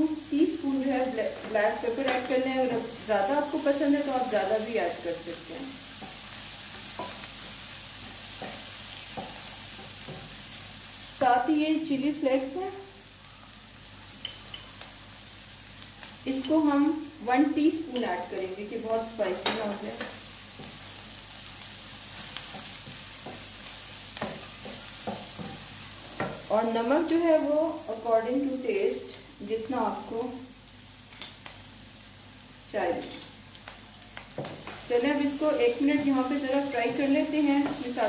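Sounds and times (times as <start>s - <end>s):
food sizzling in a pan: 0.0s - 38.0s.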